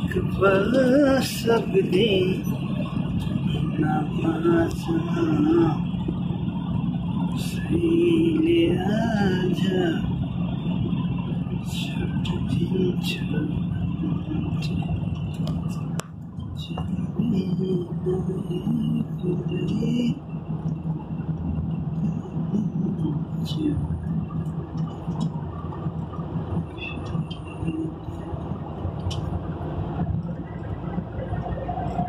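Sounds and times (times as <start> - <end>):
vehicle engine and road hum: 0.0 - 32.0.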